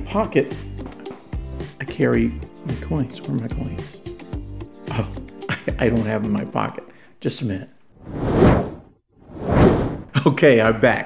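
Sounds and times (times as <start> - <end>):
whoosh sound effects: 8.0 - 10.1.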